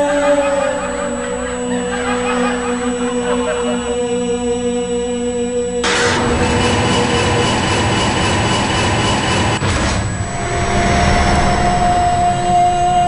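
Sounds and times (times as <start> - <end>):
dense rumbling drone: 5.7 - 13.0
higher steady tone: 10.2 - 13.0.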